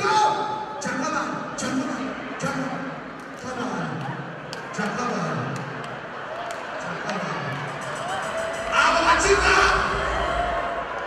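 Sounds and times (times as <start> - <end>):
man talking through pa speakers: 0.0 - 5.7, 8.6 - 10.1.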